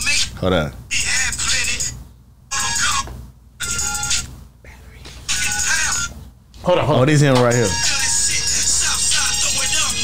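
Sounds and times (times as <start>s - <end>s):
rap song from phone speaker: 0.0s - 4.3s, 4.9s - 6.2s, 6.8s - 10.0s.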